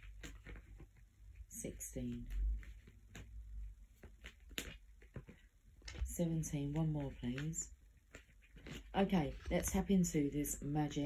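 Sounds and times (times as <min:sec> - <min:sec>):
cards clicking and tapping: 0:04.0 - 0:06.1.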